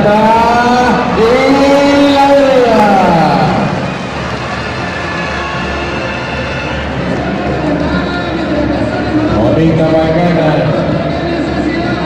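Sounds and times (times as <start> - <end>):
crowd noise hum: 0.0 - 12.0.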